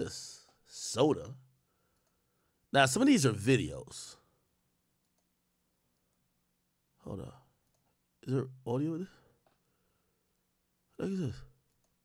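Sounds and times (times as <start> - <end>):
computer mouse clicks: 1.9 - 2.2, 5.0 - 5.3, 7.6 - 7.9, 11.6 - 12.0.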